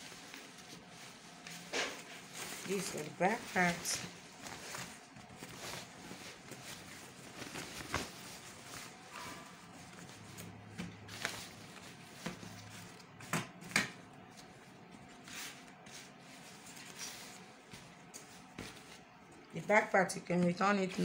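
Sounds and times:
fabric rustling: 0.0 - 13.0, 14.3 - 19.2.

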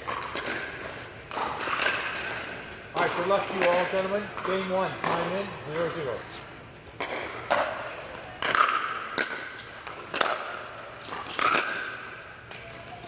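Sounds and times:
paddles hitting plastic ball: 0.0 - 2.4, 3.0 - 6.0, 7.0 - 13.0
ball bouncing on court: 3.0 - 6.0, 7.0 - 13.0.

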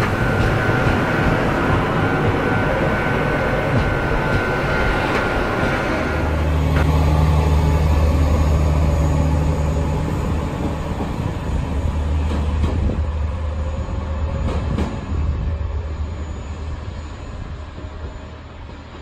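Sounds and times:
diesel railcar engine drone: 0.0 - 19.0.

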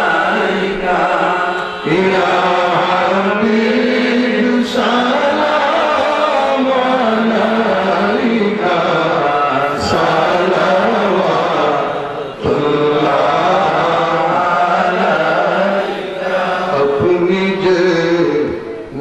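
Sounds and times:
men chanting over loudspeakers: 0.0 - 19.0.

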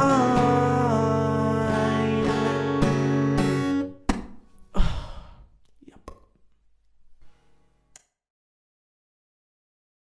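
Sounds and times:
man sighing loudly: 4.7 - 5.6.

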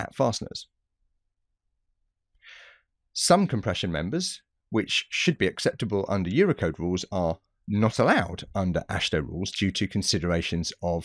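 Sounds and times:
person breathing in: 2.4 - 2.9.

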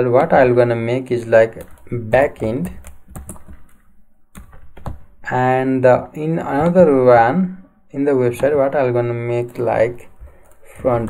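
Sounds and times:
computer keyboard typing: 1.4 - 5.1, 9.3 - 11.0.

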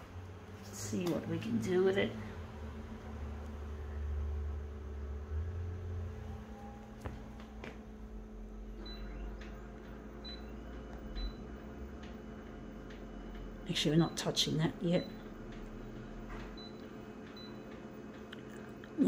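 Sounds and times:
copier humming: 0.0 - 19.0.

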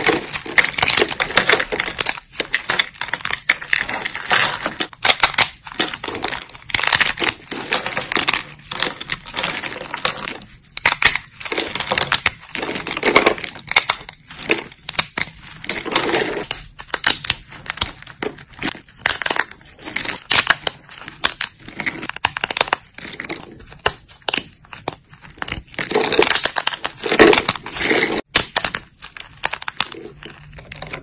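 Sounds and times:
dry soap crunching and snapping: 0.0 - 31.0.

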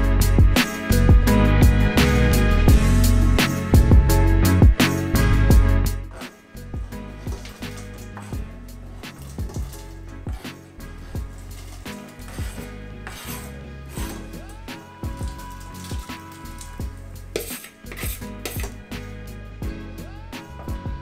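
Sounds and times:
beat music with bass and drums: 0.0 - 21.0.

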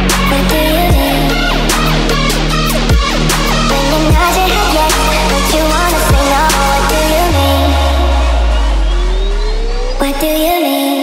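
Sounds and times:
heavy sub-bass note: 0.0 - 10.6
rising synth sweep: 0.0 - 10.7.

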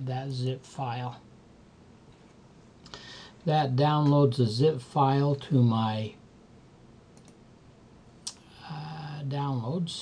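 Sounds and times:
computer mouse clicks: 7.1 - 7.4.

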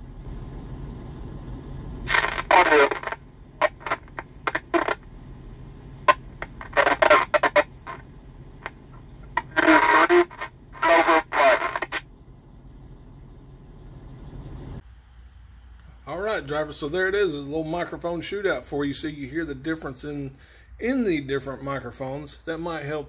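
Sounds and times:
steady truck and radio hum: 0.0 - 14.8, 15.6 - 23.0
garbled voice over radio speaker: 2.1 - 5.0, 6.1 - 12.0.

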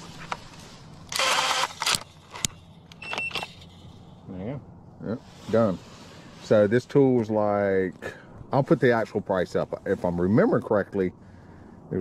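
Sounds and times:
rebar tying tool motor whirr: 0.0 - 3.8
short whirr with thin whine: 1.0 - 4.0.

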